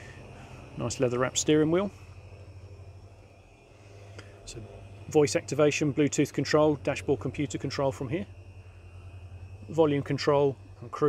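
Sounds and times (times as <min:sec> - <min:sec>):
diesel engine idling: 0:00.0 - 0:11.0.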